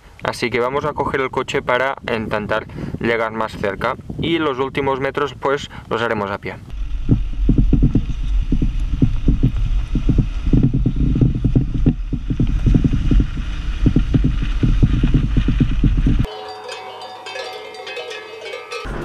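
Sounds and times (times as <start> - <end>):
wind buffeting: 6.6 - 16.3
vehicle rumbling over dirt track: 6.7 - 16.3
livestock bells ringing: 16.3 - 19.0.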